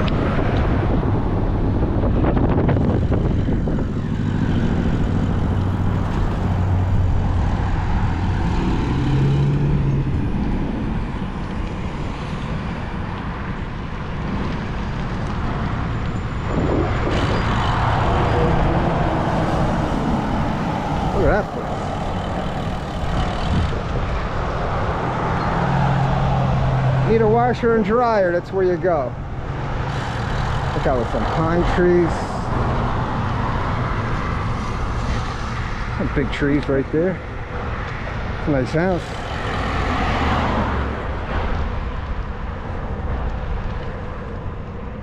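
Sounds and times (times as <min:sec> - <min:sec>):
road traffic passing: 0:00.0 - 0:45.0
wind rumble on microphone: 0:00.0 - 0:45.0.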